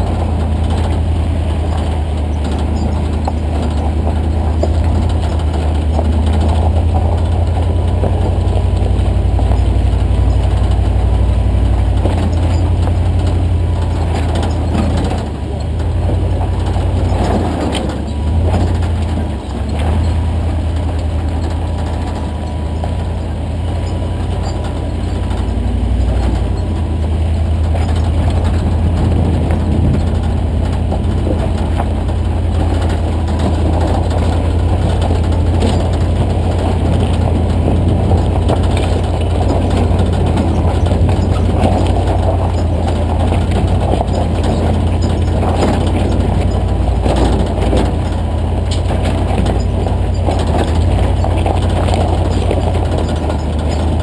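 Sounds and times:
truck engine rumbling: 0:00.0 - 0:54.0.

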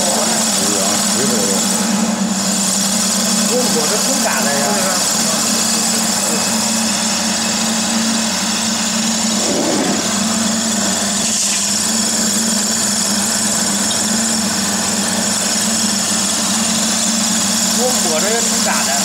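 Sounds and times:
pellet extruder motor humming: 0:00.0 - 0:19.0.

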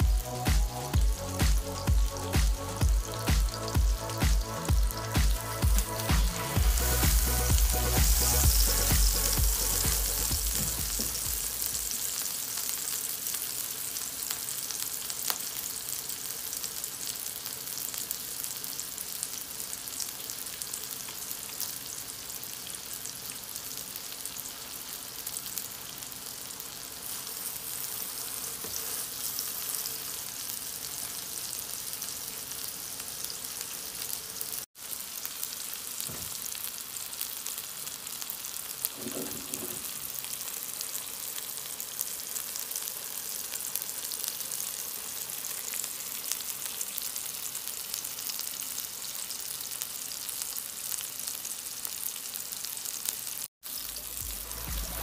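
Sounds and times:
background music with a beat: 0:00.0 - 0:11.9, 0:54.1 - 0:55.0
burger patties sizzling in a pan: 0:00.0 - 0:55.0.

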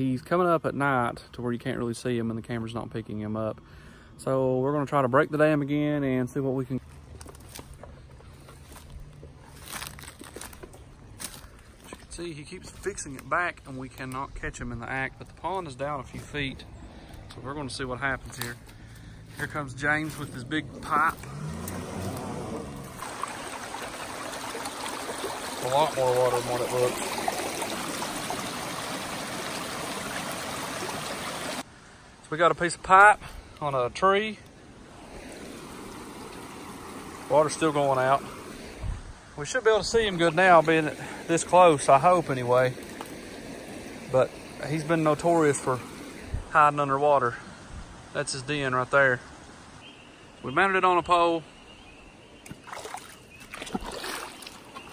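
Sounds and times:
footsteps crunching dry leaves: 0:06.8 - 0:13.3, 0:18.2 - 0:23.2
vehicle engine running: 0:17.7 - 0:24.1
water rushing through dam breach: 0:19.7 - 0:31.6, 0:34.9 - 0:48.9.

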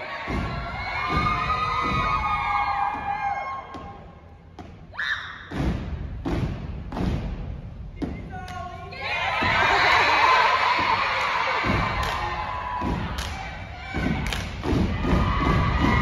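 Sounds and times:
crowd shouting and cheering: 0:00.0 - 0:04.4, 0:08.0 - 0:16.0
feet stomping on a stage: 0:00.3 - 0:04.9, 0:09.3 - 0:16.0.

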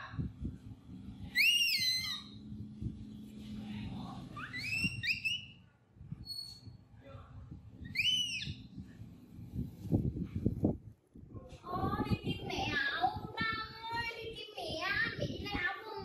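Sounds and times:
baby monkey high-pitched cries: 0:01.4 - 0:02.4, 0:04.4 - 0:05.5.

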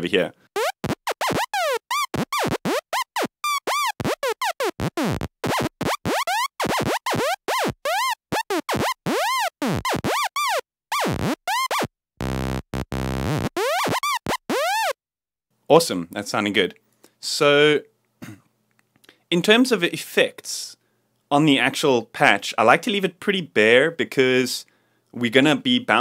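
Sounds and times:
buzzy stuttering low tone: 0:11.1 - 0:14.5.

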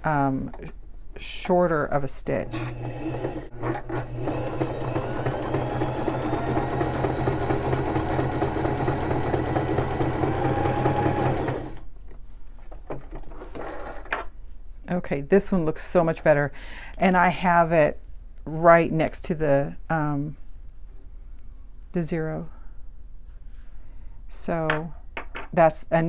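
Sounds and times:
sewing machine stitching: 0:02.4 - 0:11.9.

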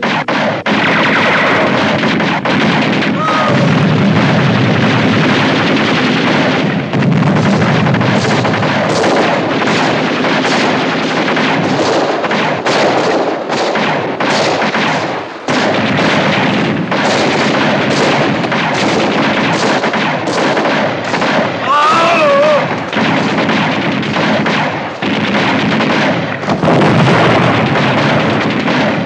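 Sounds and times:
machine guns and rifles firing: 0:00.0 - 0:29.0.

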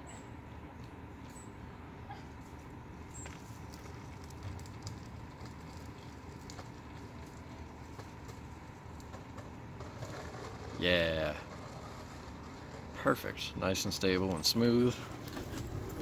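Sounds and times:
wheels clicking over pavement joints: 0:02.6 - 0:16.0
longboard wheels rolling on concrete: 0:03.0 - 0:16.0.

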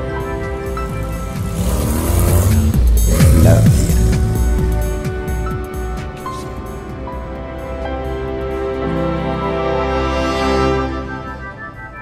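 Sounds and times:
background music: 0:00.0 - 0:12.0
car driving past: 0:00.1 - 0:05.9.

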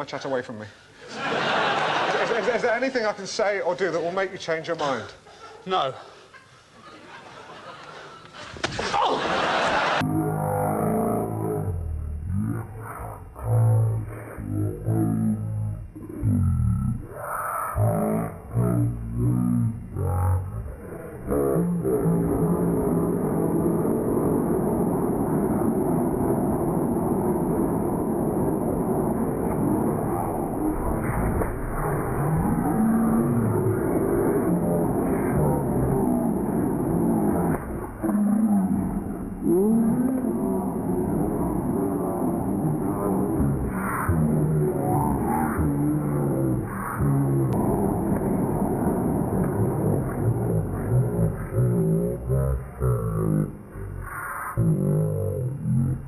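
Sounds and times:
slowed-down groans and cries: 0:10.0 - 0:56.0.

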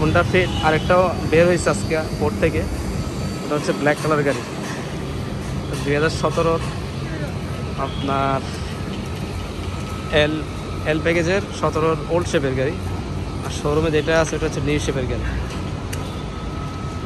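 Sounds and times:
voices talking: 0:00.0 - 0:02.7, 0:03.3 - 0:09.0.

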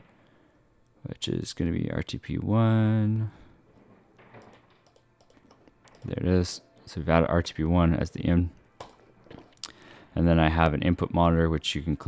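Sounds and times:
computer mouse clicks: 0:04.4 - 0:06.1.

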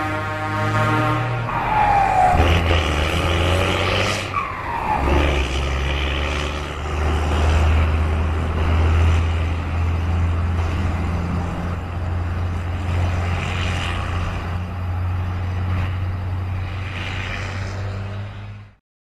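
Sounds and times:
truck diesel engine drone: 0:00.0 - 0:18.8.

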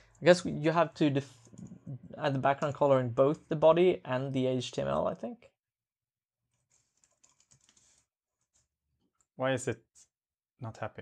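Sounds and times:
typing on keyboard: 0:06.6 - 0:08.1.

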